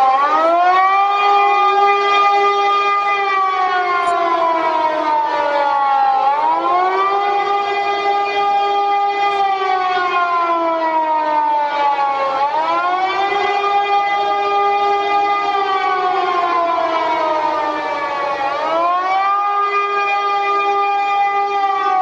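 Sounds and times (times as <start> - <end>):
air-raid siren wailing: 0.0 - 22.0.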